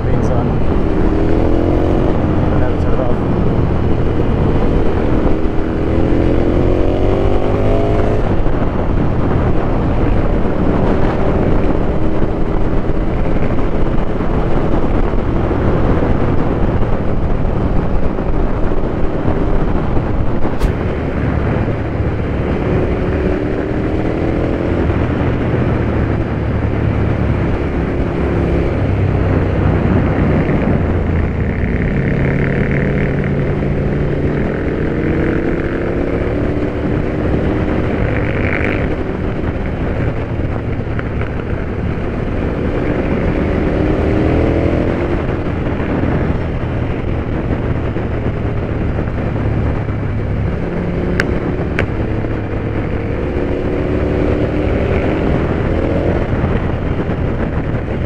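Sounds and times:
motorcycle engine accelerating: 0.0 - 58.0
wind rush on microphone: 0.0 - 58.0.

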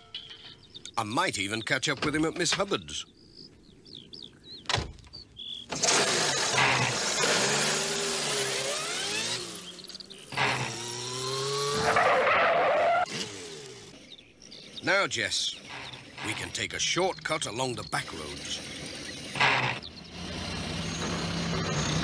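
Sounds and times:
van engine revving: 5.7 - 22.0.

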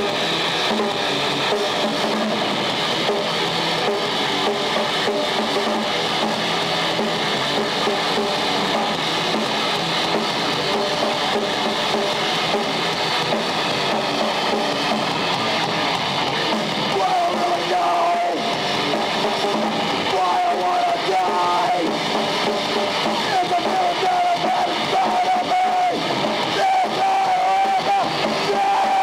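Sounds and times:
loud electric guitar: 0.0 - 29.0.

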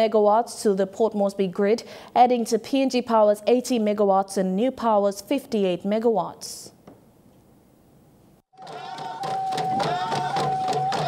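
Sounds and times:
group singing voices: 8.6 - 11.0
rapid drumbeats: 8.6 - 11.0.

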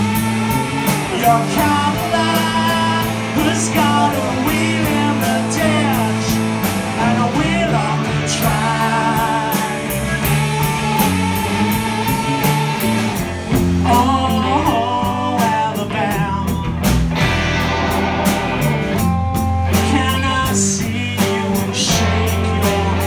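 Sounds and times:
person singing: 0.0 - 13.2, 13.8 - 16.9, 19.7 - 23.0
live rock band playing: 0.0 - 23.0.

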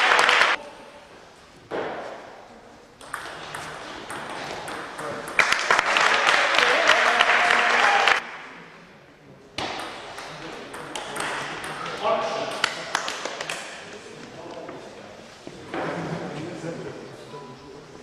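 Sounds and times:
table tennis ball hits: 3.0 - 5.6, 9.6 - 11.9.

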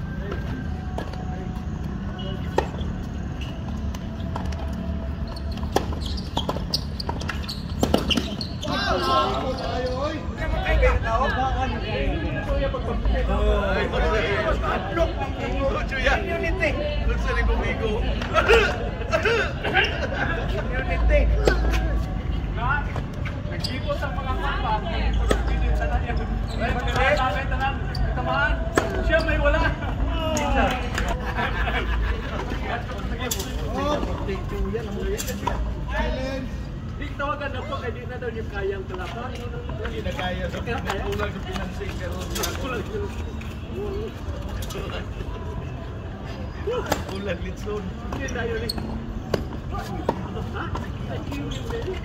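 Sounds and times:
voices: 0.0 - 52.0.

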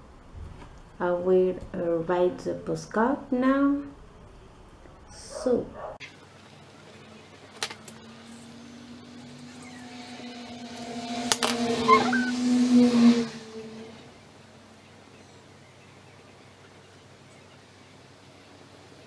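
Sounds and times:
vehicle engine passing by: 7.9 - 14.8.

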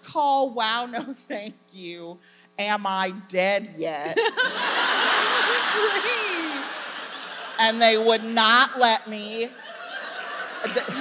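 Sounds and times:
woman chuckling: 4.1 - 4.6, 10.6 - 11.0
audience laughing: 4.2 - 8.3, 9.5 - 11.0.

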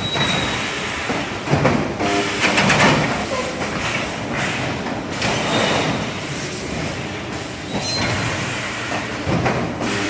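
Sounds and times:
machine clattering: 2.4 - 6.1.

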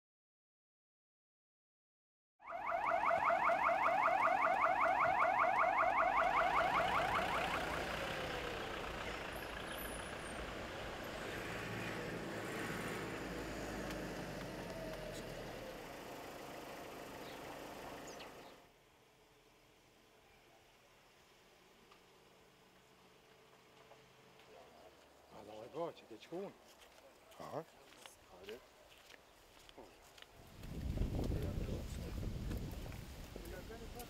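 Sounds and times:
electronic siren warbling: 2.4 - 8.6
outdoor background noise: 2.4 - 34.0.

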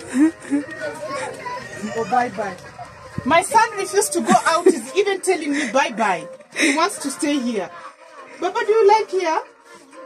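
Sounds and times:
faint children's voices: 0.0 - 10.0.

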